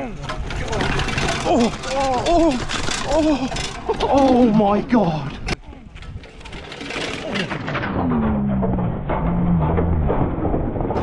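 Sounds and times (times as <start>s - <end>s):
bike rattling down rocky slope: 0.0s - 11.0s.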